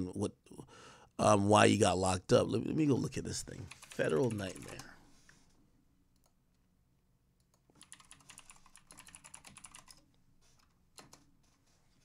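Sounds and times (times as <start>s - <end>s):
computer keyboard typing: 3.7s - 4.9s, 7.7s - 10.0s.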